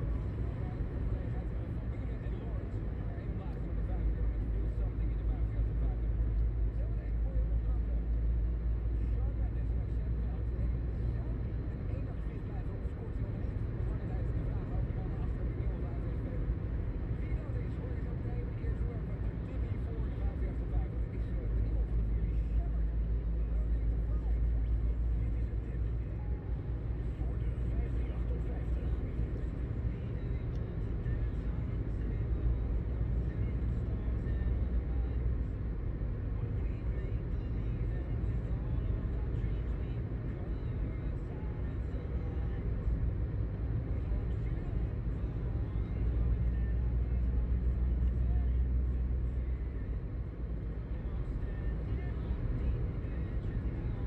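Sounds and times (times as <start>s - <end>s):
car engine and tyres rumbling inside: 0.0s - 54.0s.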